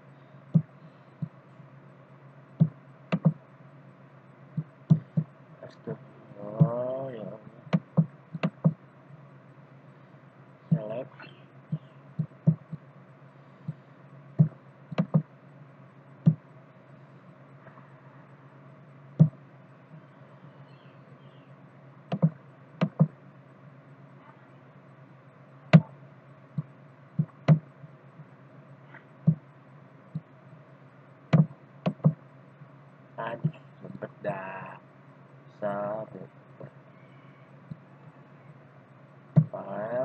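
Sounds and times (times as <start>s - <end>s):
low electrical hum: 0.0s - 40.0s.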